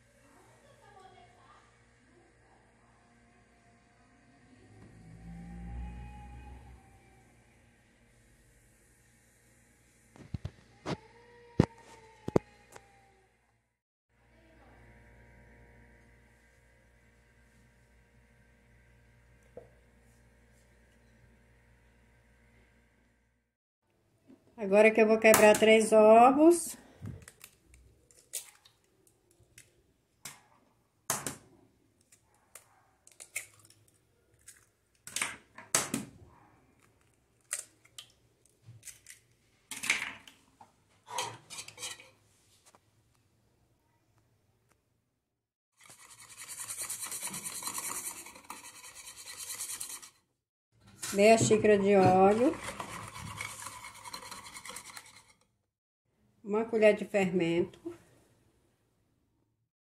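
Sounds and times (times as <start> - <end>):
whisk scraping bowl: 45.8 - 50.3, 50.9 - 55.5.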